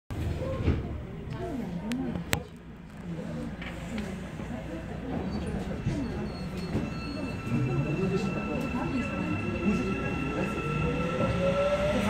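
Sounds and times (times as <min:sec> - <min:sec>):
train rumble: 0:03.3 - 0:12.0.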